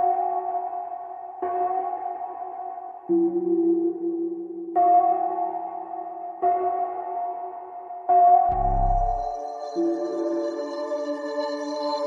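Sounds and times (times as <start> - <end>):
synthesizer chords: 8.5 - 9.9.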